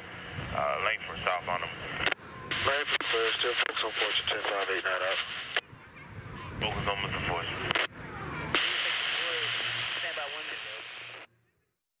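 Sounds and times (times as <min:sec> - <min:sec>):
hissing radio static: 0:00.0 - 0:05.6, 0:06.6 - 0:11.3
voice over radio: 0:00.5 - 0:05.6, 0:06.6 - 0:07.9, 0:08.6 - 0:11.3
radio click: 0:02.0 - 0:05.6, 0:07.6 - 0:07.9, 0:08.5 - 0:11.3.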